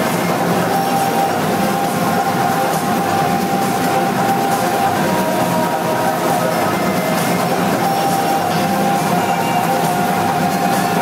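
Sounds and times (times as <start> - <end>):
dense wash of noise: 0.0 - 11.0
sustained droning tone: 0.0 - 11.0.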